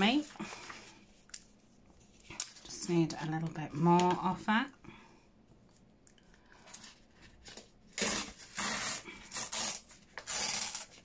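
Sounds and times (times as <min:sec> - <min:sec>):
paper tearing against metal ruler: 0:07.9 - 0:11.0.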